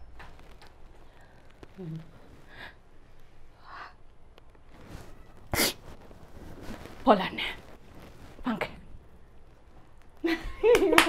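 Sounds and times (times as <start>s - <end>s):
sharp sniff: 5.5s - 5.9s.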